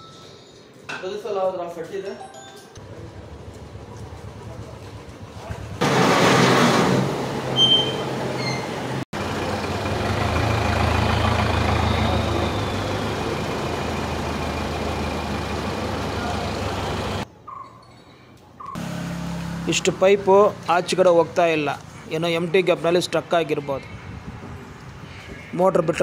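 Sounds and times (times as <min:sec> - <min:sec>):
truck engine hum: 0:02.8 - 0:17.3, 0:18.8 - 0:23.1
loud burst of noise: 0:05.8 - 0:07.6.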